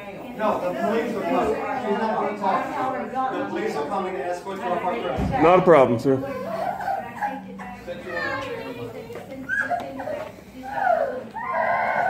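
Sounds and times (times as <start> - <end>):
nearby conversation: 0.0 - 11.8
indistinct voices: 0.0 - 12.0.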